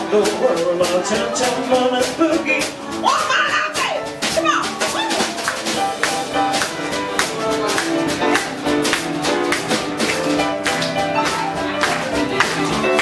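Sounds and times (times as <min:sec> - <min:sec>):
person singing: 0:00.0 - 0:05.4
drum kit beat: 0:00.0 - 0:13.0
piano: 0:00.0 - 0:13.0
rock and roll band playing: 0:00.0 - 0:13.0.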